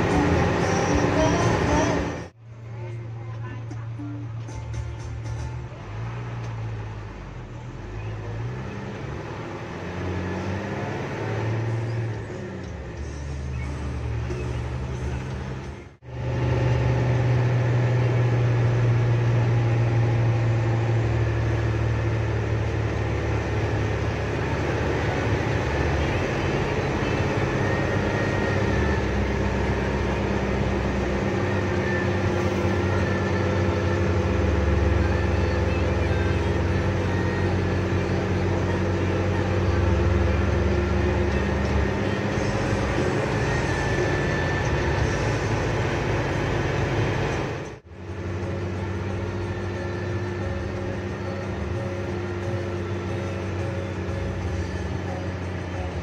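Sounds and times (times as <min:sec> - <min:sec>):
bus engine drone: 0:00.0 - 0:56.0.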